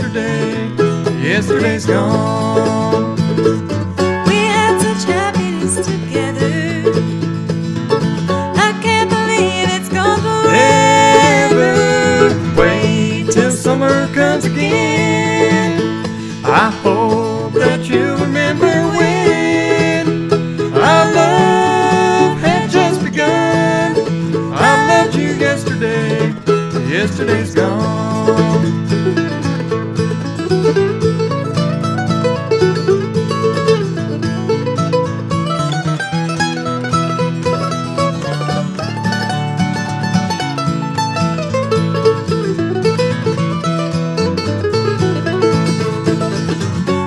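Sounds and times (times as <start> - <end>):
acoustic guitar strumming: 0.0 - 47.0
mandolin picking melody: 0.0 - 47.0.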